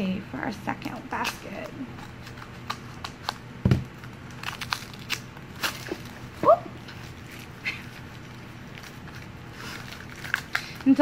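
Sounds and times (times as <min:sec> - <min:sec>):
foil bag crinkling: 0:01.1 - 0:11.0.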